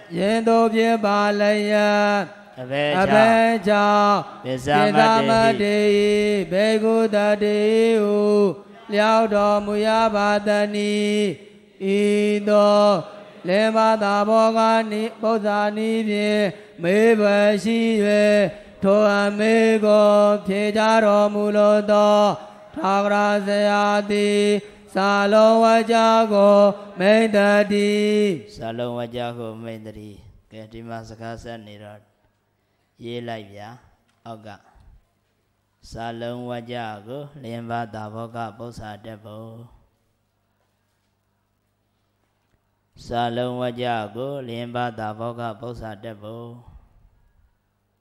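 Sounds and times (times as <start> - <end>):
person chanting into a microphone: 0.0 - 32.0, 35.8 - 39.9, 43.0 - 46.9
breaths: 16.5 - 16.8, 18.5 - 18.8, 32.4 - 33.0.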